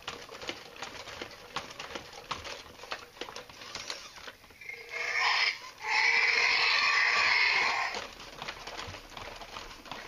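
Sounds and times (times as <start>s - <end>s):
electronic dinosaur call: 4.6s - 7.9s.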